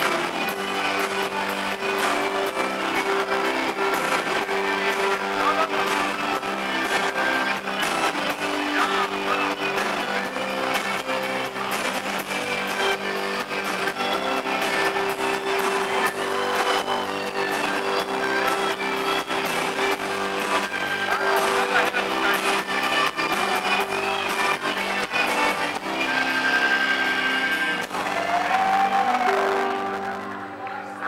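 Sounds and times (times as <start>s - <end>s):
electric guitar sustained notes: 0.0s - 31.0s
live band playing: 0.0s - 31.0s.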